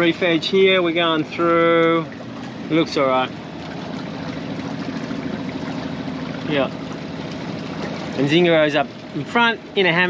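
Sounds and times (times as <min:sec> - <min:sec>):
boat engine droning: 0:00.0 - 0:10.0
water washing along hull: 0:00.0 - 0:10.0.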